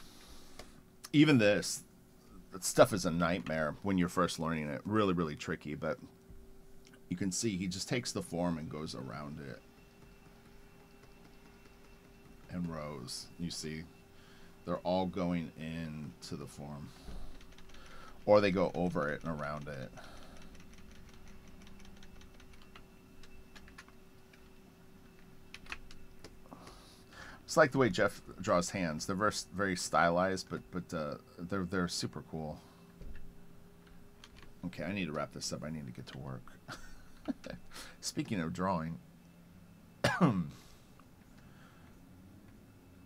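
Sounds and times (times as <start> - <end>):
steady low hum: 0.0 - 43.0
man clearing his throat: 40.0 - 40.5.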